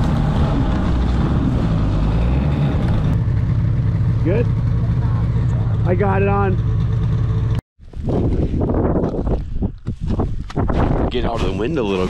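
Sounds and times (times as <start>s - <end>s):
wind buffeting microphone: 7.8s - 12.0s.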